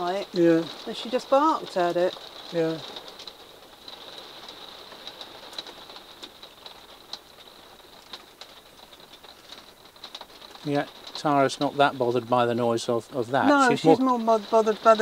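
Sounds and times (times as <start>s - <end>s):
hail and rain tapping on roof: 0.0s - 15.0s.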